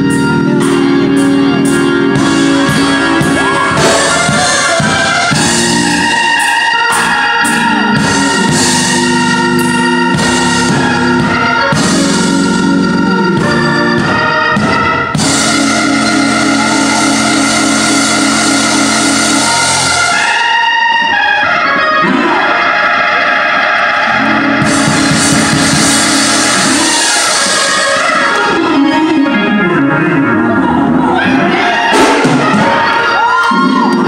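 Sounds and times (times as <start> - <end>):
congregation cheering and shouting: 0.0 - 34.0
organ sustained chord: 0.0 - 34.0
thump: 31.9 - 32.9.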